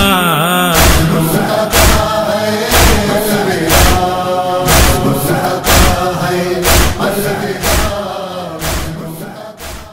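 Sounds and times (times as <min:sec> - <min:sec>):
heavy beat: 0:00.0 - 0:09.9
male voices chanting in chorus: 0:00.0 - 0:09.9.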